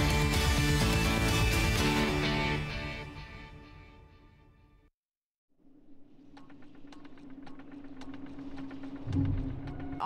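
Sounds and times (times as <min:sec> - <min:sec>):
rapid ticking clicks: 0:06.4 - 0:09.9.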